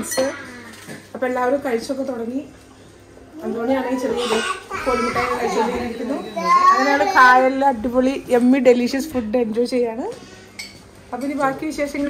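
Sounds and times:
plates and cutlery clinking: 0.0 - 1.2, 10.1 - 12.0.

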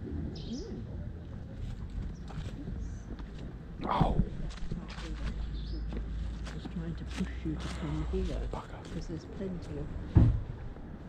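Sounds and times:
footsteps on street: 1.2 - 11.0.

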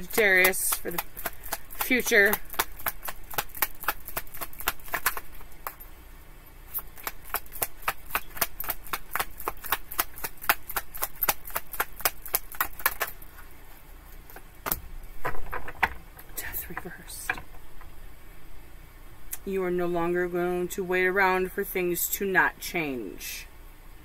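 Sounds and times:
cards being shuffled: 0.0 - 5.8, 6.7 - 15.8.

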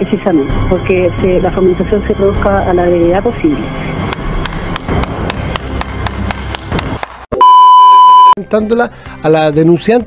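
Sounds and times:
test-tone beep: 7.4 - 8.4.

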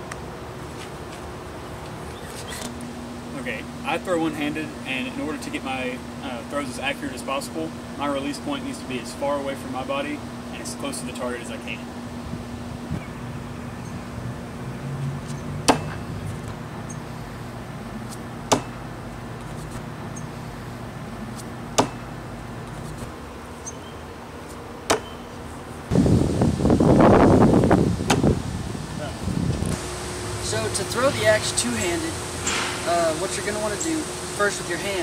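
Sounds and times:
axe striking wooden target: 15.6 - 16.0, 18.5 - 18.8, 21.8 - 22.1, 24.9 - 25.1
loud rushing noise: 25.9 - 33.7.

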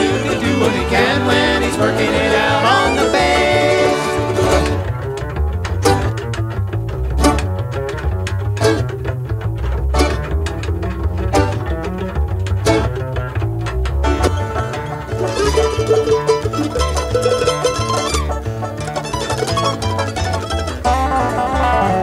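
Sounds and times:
bluegrass band playing: 0.0 - 22.0
upright bass plucked notes: 0.0 - 22.0
bass slap clicks: 4.2 - 22.0.

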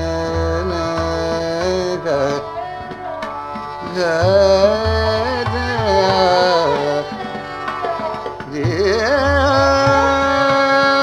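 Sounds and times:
instrumental accompaniment: 0.0 - 11.0
man singing: 0.0 - 11.0.

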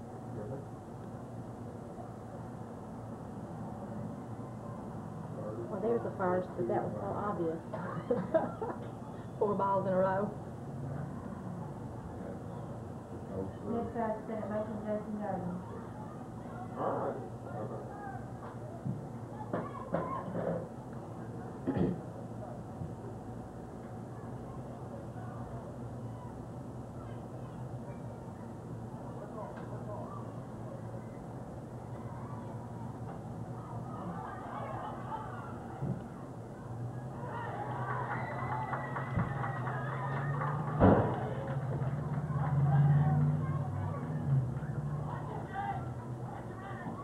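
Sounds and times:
faint distant voices: 0.0 - 47.0
steady low hum: 0.0 - 47.0
sharp knock: 40.8 - 41.2.

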